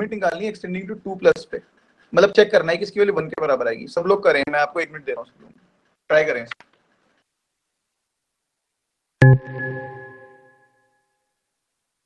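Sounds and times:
electronic notification chime: 0:09.2 - 0:10.7.

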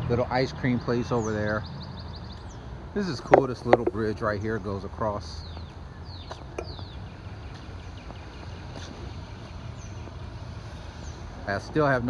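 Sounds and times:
small birds chirping: 0:00.0 - 0:12.0
light taps: 0:03.3 - 0:04.0.

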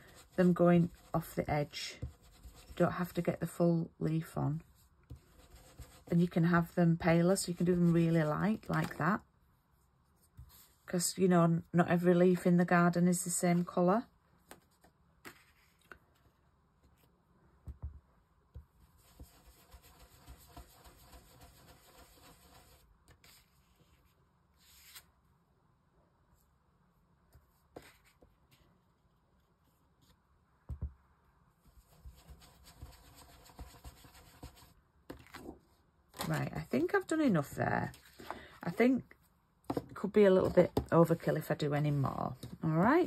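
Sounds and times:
sponge dauber rubbing on stencil: 0:00.0 - 0:02.9, 0:05.1 - 0:06.4, 0:19.0 - 0:23.5, 0:31.8 - 0:34.7.

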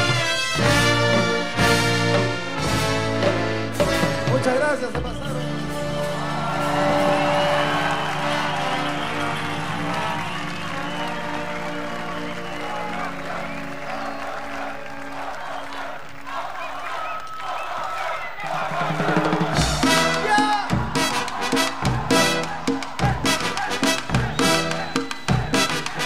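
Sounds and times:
brass band sustained chord: 0:00.0 - 0:04.7, 0:05.3 - 0:16.4, 0:19.4 - 0:25.0
crowd cheering and applauding: 0:00.0 - 0:26.0.

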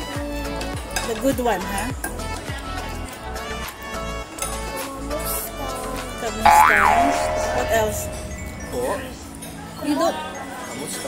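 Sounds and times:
cartoon boing sound effect: 0:06.5 - 0:09.0
background music: 0:06.5 - 0:09.6.

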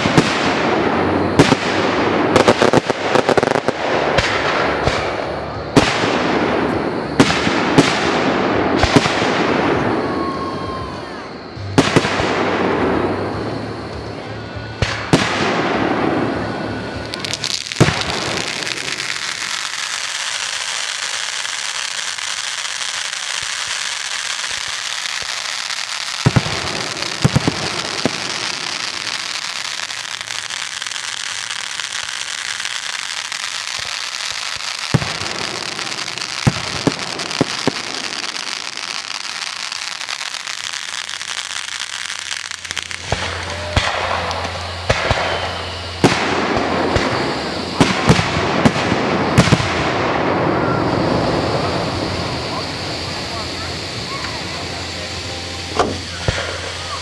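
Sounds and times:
firework fountains hissing and crackling: 0:00.0 - 0:57.0
firework shells bursting: 0:16.9 - 0:57.0.

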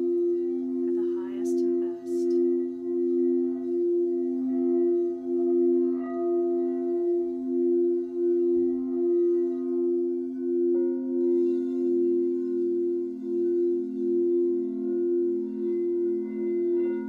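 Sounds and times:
singing bowls ringing: 0:00.0 - 0:17.0.

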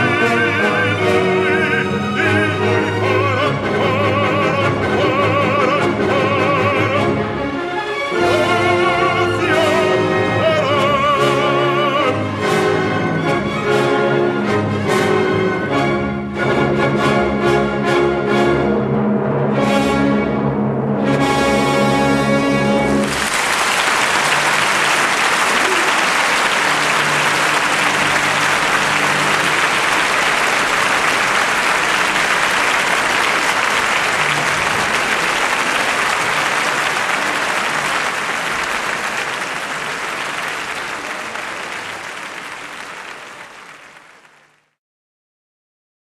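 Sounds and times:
audience applause: 0:08.2 - 0:12.1, 0:22.9 - 0:44.8.

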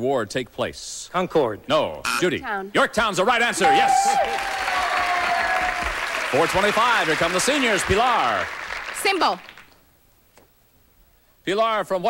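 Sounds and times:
studio audience applauding: 0:03.6 - 0:09.8.

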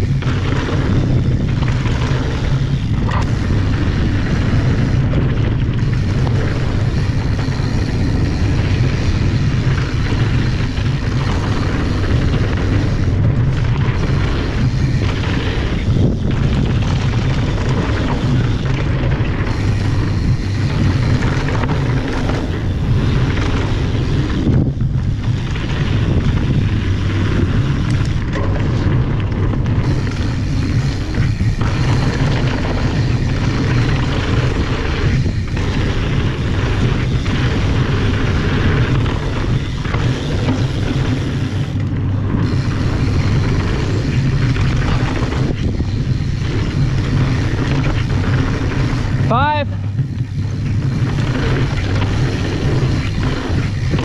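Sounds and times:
bike tyres rolling over dirt: 0:00.0 - 0:54.0
wind rushing over microphone: 0:00.0 - 0:54.0.

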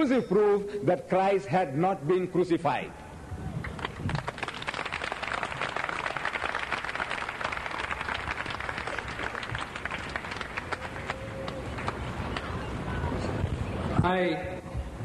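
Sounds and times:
audience applauding: 0:03.6 - 0:12.7.

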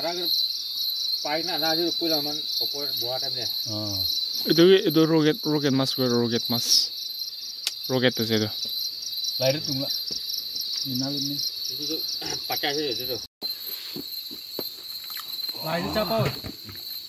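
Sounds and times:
insects trilling: 0:00.0 - 0:17.0.

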